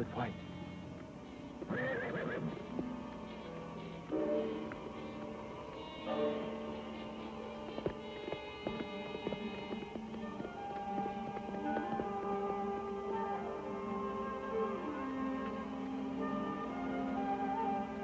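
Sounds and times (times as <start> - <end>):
sustained film score chords: 0.0 - 18.0
horse whinnying: 1.6 - 2.7
horse hooves galloping: 6.0 - 13.4.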